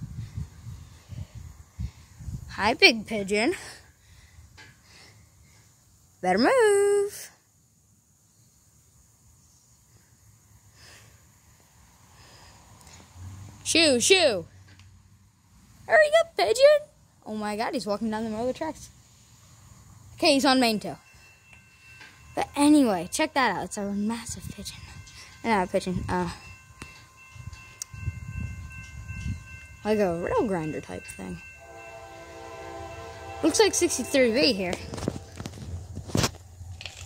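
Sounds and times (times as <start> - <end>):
soft breath near microphone: 0.0 - 2.5, 3.6 - 5.9, 9.8 - 13.2, 24.7 - 25.4
low train rumble: 17.4 - 37.0
distant locomotive horn: 31.6 - 35.9.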